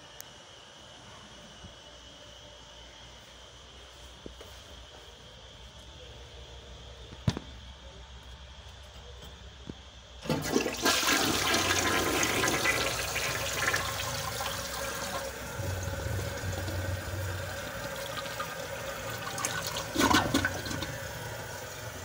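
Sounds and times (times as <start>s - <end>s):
toilet flushing: 10.2s - 22.0s.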